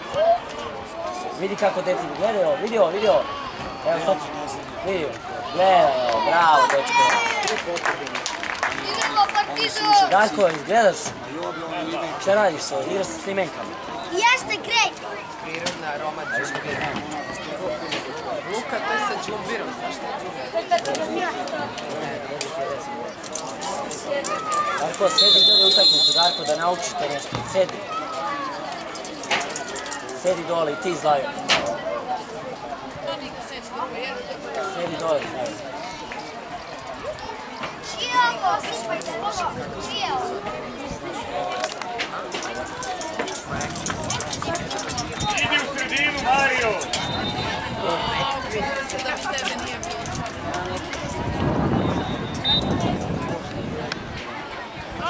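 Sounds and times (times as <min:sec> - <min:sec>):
voices and shouts: 0:00.0 - 0:55.0.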